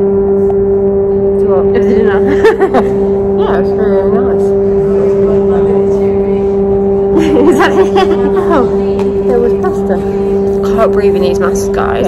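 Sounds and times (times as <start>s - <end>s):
low machinery hum: 0.0s - 12.0s
voices: 1.3s - 12.0s.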